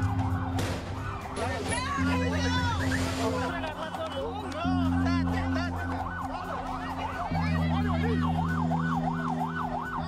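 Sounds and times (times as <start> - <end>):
siren in a fast yelp: 3.5 - 10.0.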